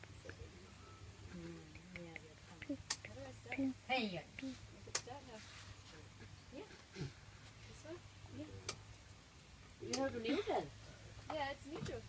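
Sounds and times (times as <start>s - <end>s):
quiet talking voices: 0.0s - 9.1s, 9.7s - 12.0s.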